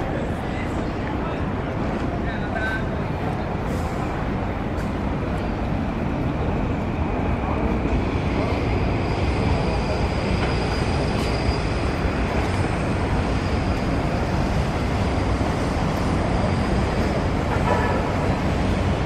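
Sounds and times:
city traffic: 0:00.0 - 0:19.0.

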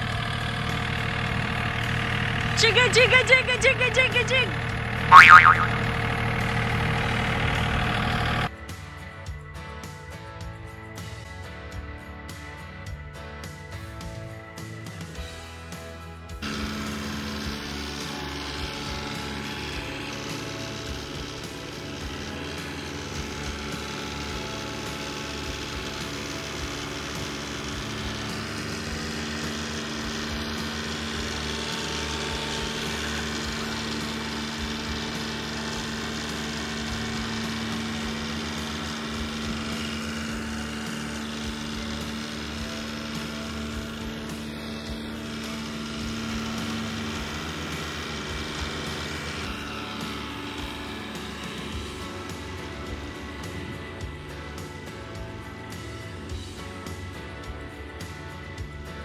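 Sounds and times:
music: 0:00.0 - 0:59.0
tractor diesel engine running: 0:00.0 - 0:59.0.

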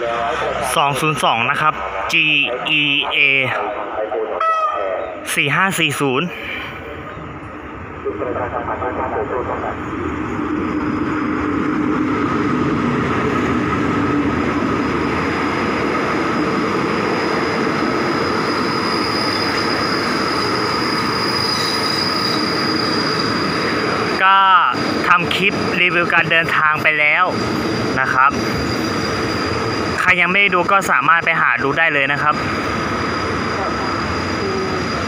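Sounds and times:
diesel locomotive passing: 0:00.0 - 0:35.0
train wheels rumbling on rail: 0:06.4 - 0:35.0
high wheel squeal: 0:17.0 - 0:24.0, 0:27.6 - 0:30.0, 0:32.4 - 0:35.0.

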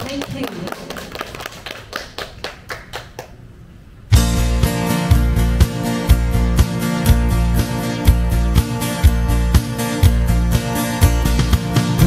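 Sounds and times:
people applauding: 0:00.0 - 0:03.4.

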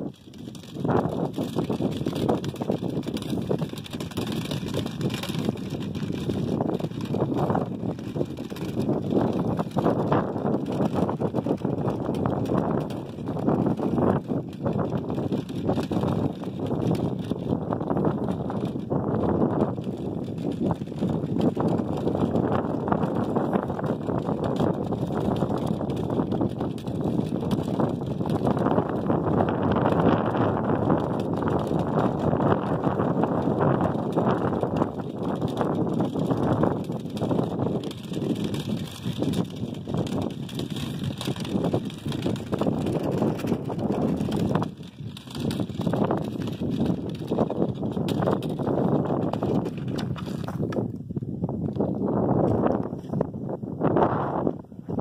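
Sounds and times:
small clicks and rattles: 0:00.0 - 0:51.0
measuring wheel rolling on asphalt: 0:00.0 - 0:53.3.

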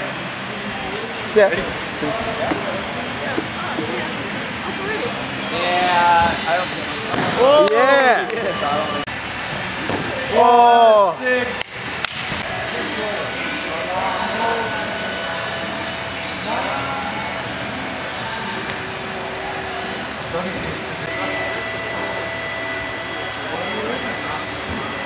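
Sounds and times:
steady hum: 0:00.0 - 0:25.0
faint indistinct voices: 0:12.4 - 0:25.0.

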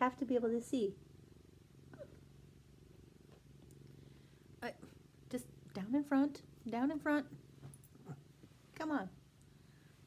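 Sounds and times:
cat purring: 0:00.0 - 0:10.0.

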